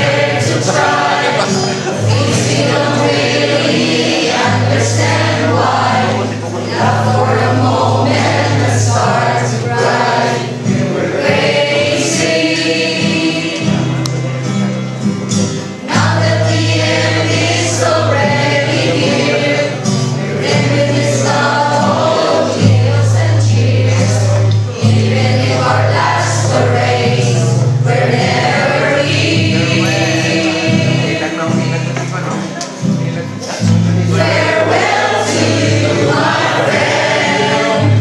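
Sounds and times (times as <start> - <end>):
group singing in unison: 0.0 - 38.0.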